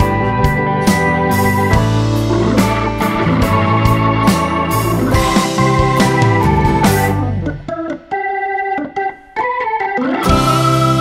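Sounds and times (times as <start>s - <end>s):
organ music with held chords: 0.0s - 11.0s.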